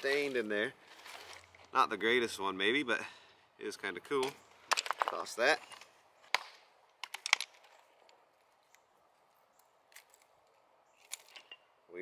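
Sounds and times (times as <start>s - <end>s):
stones clacking on stone: 4.2s - 8.8s.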